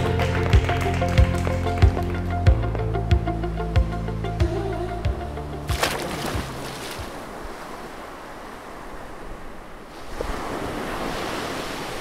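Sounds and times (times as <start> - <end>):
sea waves rushing: 5.6 - 12.0.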